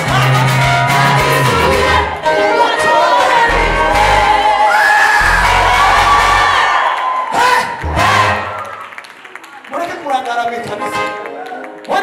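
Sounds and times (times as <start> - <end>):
congregation voices: 0.0 - 4.8
bass line: 0.0 - 7.0, 7.6 - 8.6
gospel choir singing with band: 0.0 - 8.7.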